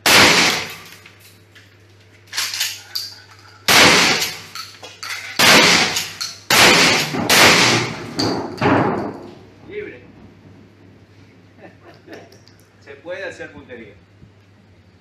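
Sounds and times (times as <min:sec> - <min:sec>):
shotgun blasts with echo: 0:00.0 - 0:00.8, 0:03.7 - 0:04.5, 0:05.4 - 0:08.1.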